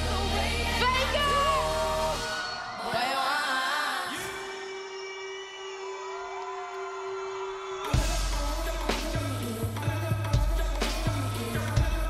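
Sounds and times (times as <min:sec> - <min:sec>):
live band with heavy bass beat: 0:08.0 - 0:12.0.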